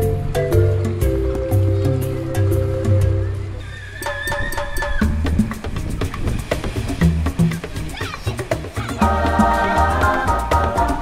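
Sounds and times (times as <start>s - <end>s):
light percussion ticks: 4.0s - 11.0s
repeating bass line: 9.0s - 11.0s.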